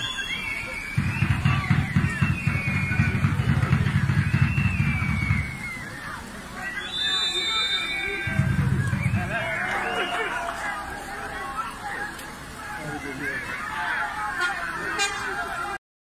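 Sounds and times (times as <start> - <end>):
short high referee's whistle: 0.0 - 3.3, 6.6 - 10.3
players shouting: 0.0 - 15.8.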